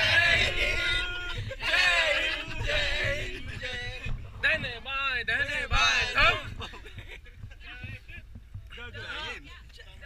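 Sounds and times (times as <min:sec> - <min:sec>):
passengers chatting: 0:00.0 - 0:08.2
bus engine rumble: 0:00.0 - 0:08.7.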